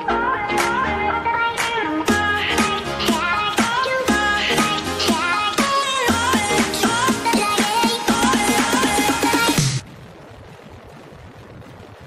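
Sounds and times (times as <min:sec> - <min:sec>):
wind rushing on microphone: 0:09.6 - 0:12.0.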